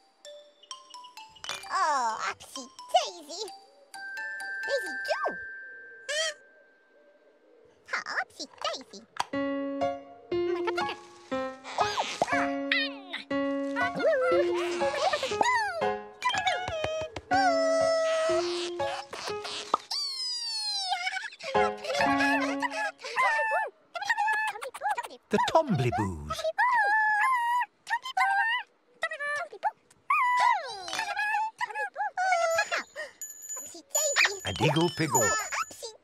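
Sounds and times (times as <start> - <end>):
light children's music: 0.0 - 7.0, 9.2 - 19.9, 21.3 - 23.1, 32.4 - 36.0
squeaky gibberish voices chattering: 13.9 - 16.6, 17.4 - 26.2, 33.9 - 35.8.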